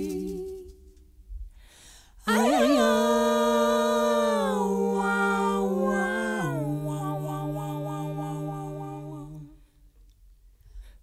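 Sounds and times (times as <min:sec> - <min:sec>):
women humming: 0:02.3 - 0:09.6.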